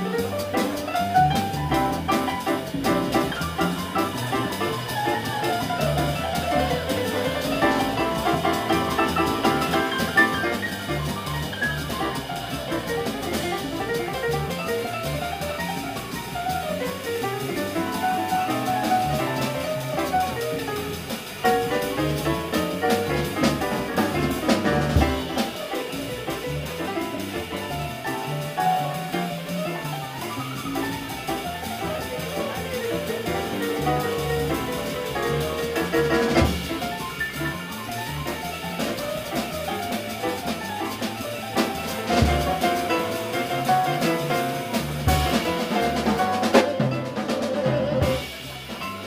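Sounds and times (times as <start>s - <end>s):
drum kit: 0.0s - 49.0s
piano: 0.0s - 49.0s
walking double bass: 0.0s - 49.0s
sharp drum hits: 17.8s - 27.8s, 38.8s - 49.0s.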